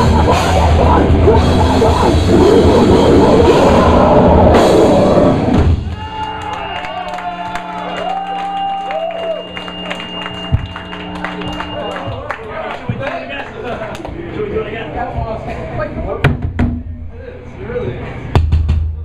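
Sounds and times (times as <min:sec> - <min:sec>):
death metal band playing live: 0:00.0 - 0:06.0.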